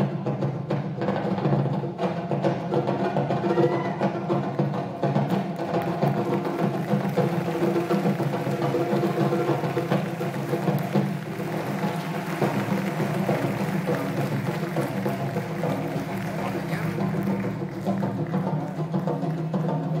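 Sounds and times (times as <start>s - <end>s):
marimbas and drums playing: 0.0s - 20.0s.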